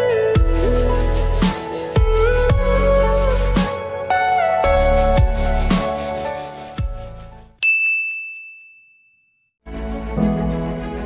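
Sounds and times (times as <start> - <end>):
background music: 0.0 - 7.6, 9.6 - 11.0
bell-like ding: 7.6 - 9.5.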